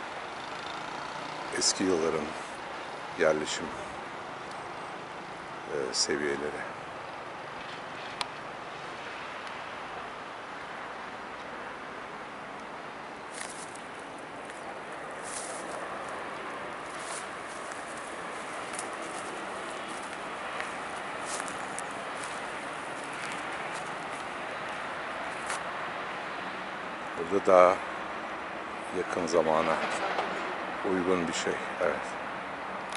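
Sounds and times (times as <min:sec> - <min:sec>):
distant city traffic hiss: 0:00.0 - 0:32.9
footsteps crunching on dry grass: 0:13.3 - 0:25.6.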